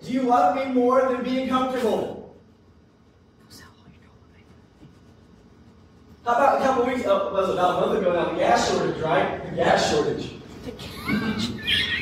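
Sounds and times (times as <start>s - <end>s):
man speaking: 0.0s - 2.4s, 6.2s - 10.5s.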